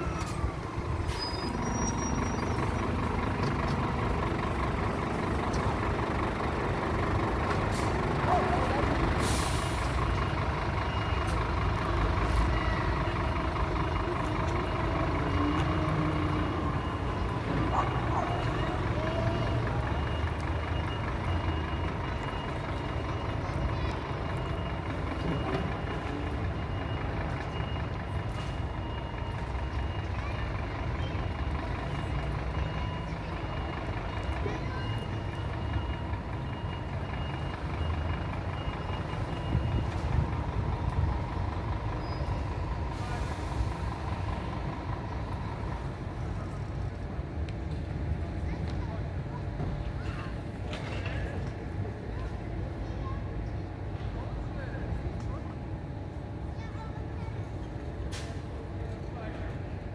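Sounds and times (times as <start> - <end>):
diesel engine at low revs: 0.0 - 50.6
air brake hiss: 9.2 - 10.0
reversing alarm: 9.8 - 40.6.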